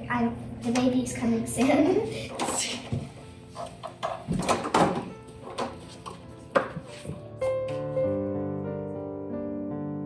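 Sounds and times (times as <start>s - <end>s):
faint background music: 0.0s - 9.0s
wooden door knocks: 3.9s - 5.8s.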